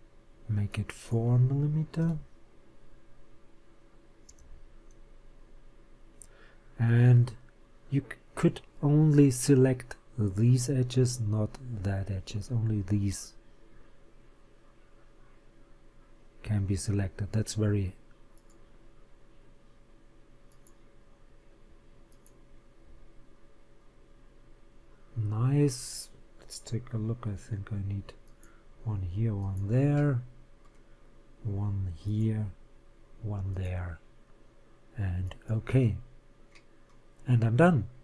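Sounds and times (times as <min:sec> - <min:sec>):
low steady hum: 0:00.0 - 0:38.0
faint computer mouse clicks: 0:04.2 - 0:05.0, 0:18.3 - 0:18.7, 0:20.5 - 0:20.8, 0:22.1 - 0:22.4.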